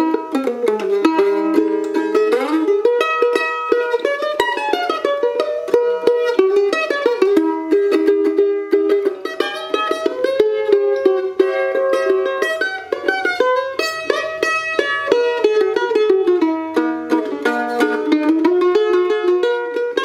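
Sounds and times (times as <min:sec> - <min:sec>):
mandolin played with a pick: 0:00.0 - 0:20.0.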